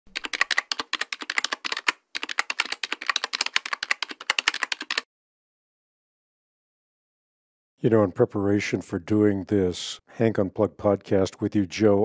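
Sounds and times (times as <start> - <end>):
rapid keyboard typing: 0.1 - 5.1.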